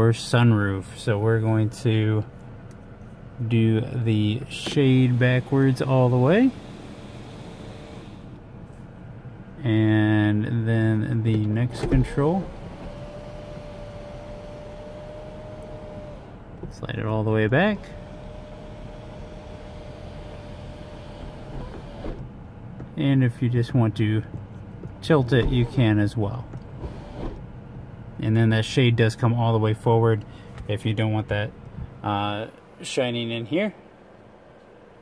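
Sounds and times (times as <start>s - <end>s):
sunshade motor running: 4.1s - 8.5s, 11.7s - 16.8s, 17.5s - 22.9s, 24.3s - 27.8s.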